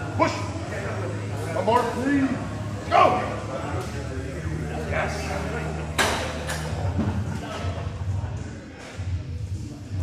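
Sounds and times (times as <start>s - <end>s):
gym background music: 0.0s - 10.0s.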